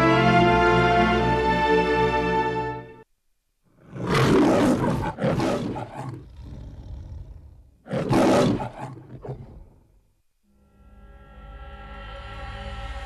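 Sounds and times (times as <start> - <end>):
animal-like roar: 3.8 - 9.8.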